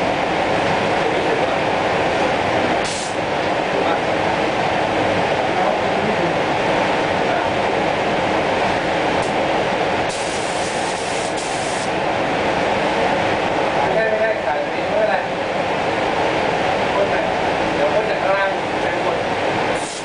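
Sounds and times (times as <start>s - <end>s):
spray booth air rushing: 2.8s - 3.2s, 10.1s - 11.9s, 19.7s - 20.0s
spray gun hissing bursts: 2.8s - 3.2s, 10.1s - 11.9s, 19.8s - 20.0s.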